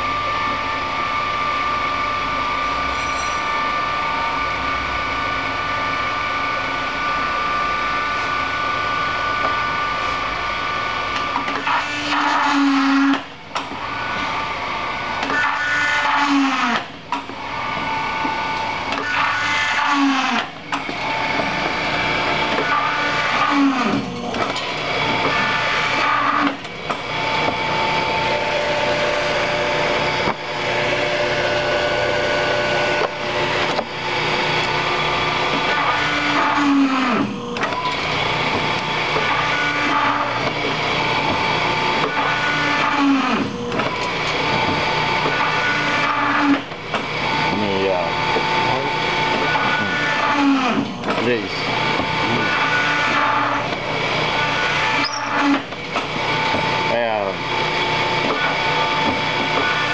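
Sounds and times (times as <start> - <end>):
paper drill motors humming: 0.0 - 59.9
drill bits cutting paper: 15.2 - 16.9, 18.2 - 59.9.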